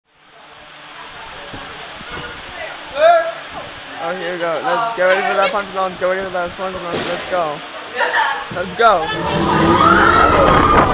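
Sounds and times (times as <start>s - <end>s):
rushing hiss: 0.1s - 10.9s.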